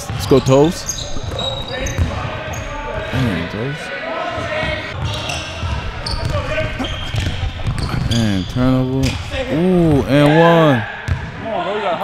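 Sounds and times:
faint voices of players: 0.0 - 12.0.

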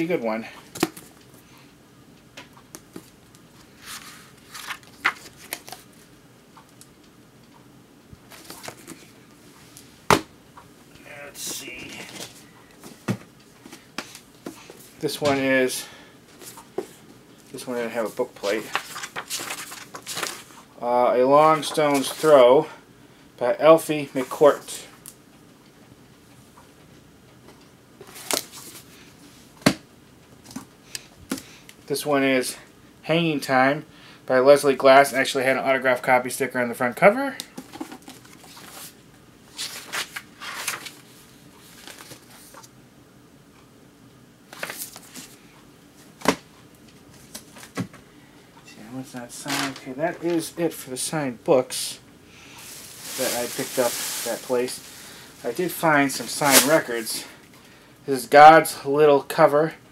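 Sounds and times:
paper pages rustling: 2.9 - 5.9, 8.3 - 9.1, 18.0 - 20.6, 21.6 - 22.3, 37.6 - 42.7, 44.5 - 45.4, 52.6 - 57.0.

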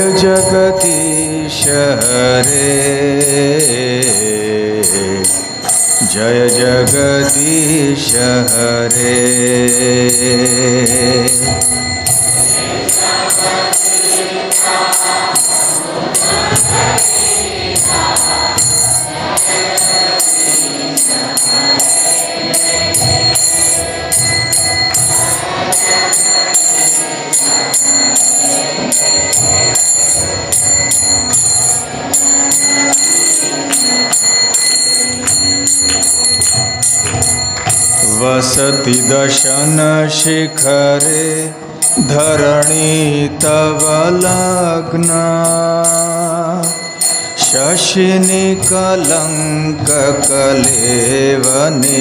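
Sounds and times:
hand cymbals ringing: 0.0 - 52.0
wavering melody: 0.0 - 52.0.

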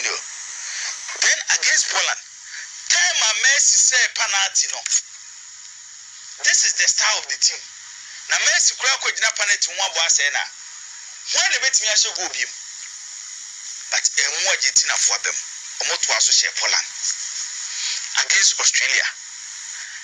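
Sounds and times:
thin radio voice talking: 0.0 - 2.2, 2.9 - 5.0, 6.4 - 10.5, 11.3 - 12.6, 13.9 - 19.2
steady hiss: 0.0 - 20.0.

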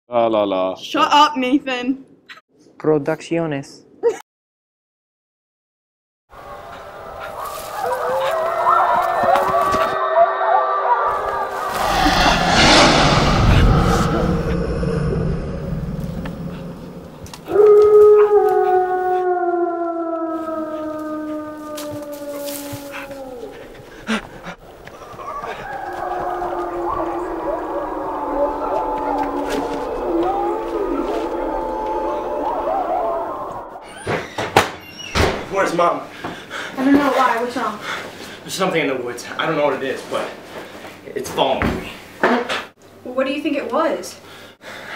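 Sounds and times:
wolves howling: 6.4 - 12.3, 16.0 - 34.1
loud rushing noise: 11.1 - 17.6, 26.4 - 33.7.

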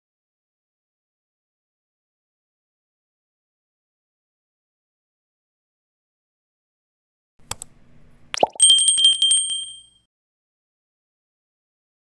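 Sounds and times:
button click: 8.4 - 9.7
notification bell trilling: 8.4 - 10.0.

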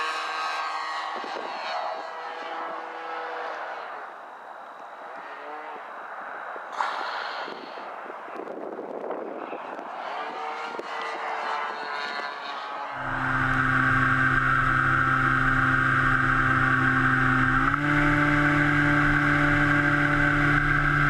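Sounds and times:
model airplane engine drone: 0.0 - 6.0, 6.6 - 21.0
wind noise: 0.9 - 2.1, 6.1 - 11.2.

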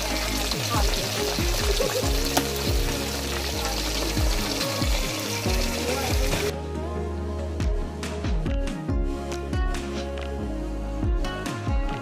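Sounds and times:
chicken deep-frying in oil: 0.0 - 6.5
background music: 0.0 - 12.0.

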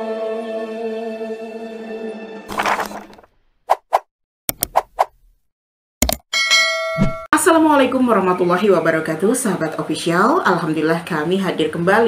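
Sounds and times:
sharp click: 4.5 - 5.3, 6.0 - 6.2
bright bell ding: 6.3 - 7.3.

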